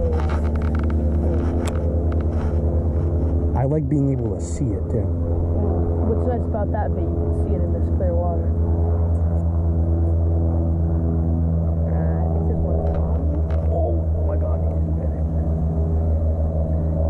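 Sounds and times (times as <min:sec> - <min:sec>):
engine running with low hum: 0:00.0 - 0:17.0.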